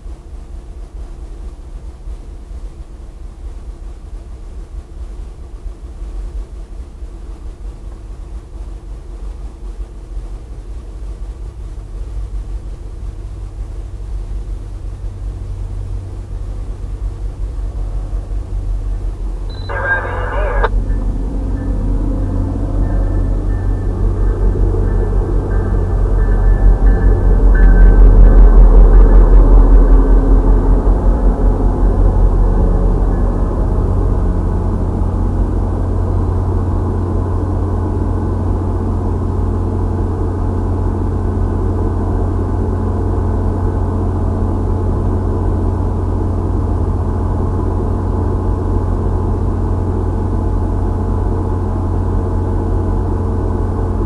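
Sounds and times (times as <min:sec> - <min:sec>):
diesel train passing with rumble: 0:00.0 - 0:54.0.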